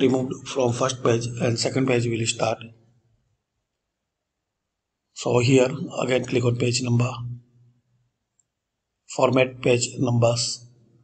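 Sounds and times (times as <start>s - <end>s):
man speaking: 0.0s - 2.7s, 5.2s - 7.3s, 9.1s - 10.6s.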